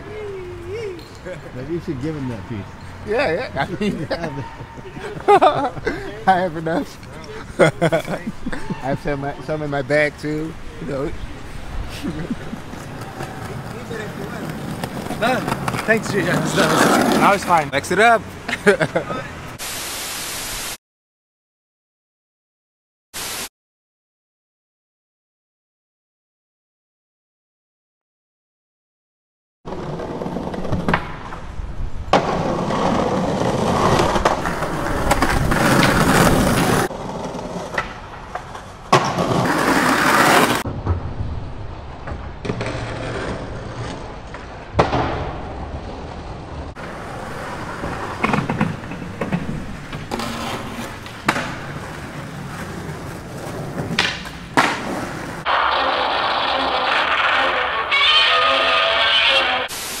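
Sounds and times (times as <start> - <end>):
skateboard wheels rolling on pavement: 0.0 - 19.6, 29.6 - 59.7
skateboard pops and landings: 32.1 - 41.2, 42.0 - 46.2, 47.8 - 52.6, 53.4 - 58.2.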